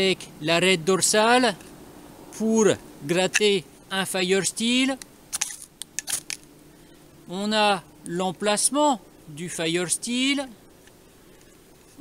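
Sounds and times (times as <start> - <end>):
knife scraping fire steel: 5.4 - 6.4.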